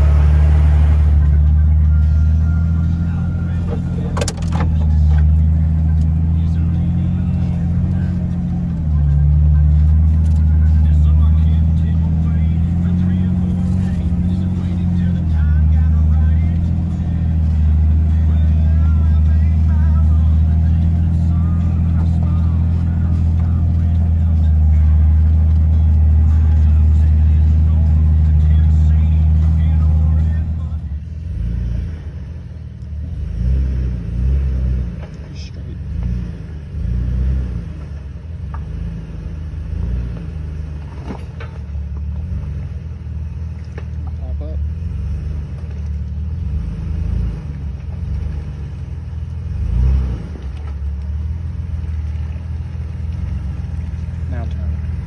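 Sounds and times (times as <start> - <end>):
engine revving: 0.0 - 55.0
engine running from inside cab: 0.0 - 55.0.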